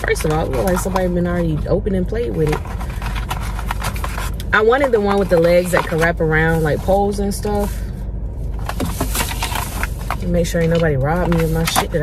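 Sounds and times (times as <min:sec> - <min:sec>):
low car cabin rumble: 0:00.0 - 0:12.0.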